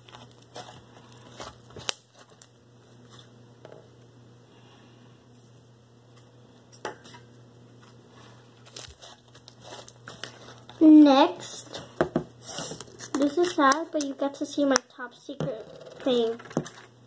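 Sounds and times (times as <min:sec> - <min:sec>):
child's voice: 0:10.8 - 0:11.8, 0:13.2 - 0:16.4.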